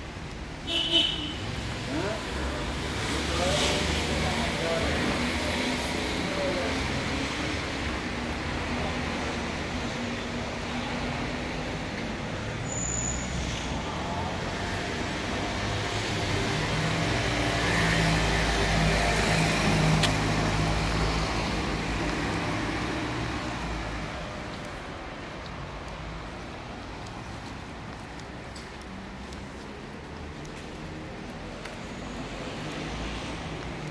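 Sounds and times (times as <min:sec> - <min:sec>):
cars driving by: 0:00.0 - 0:33.9.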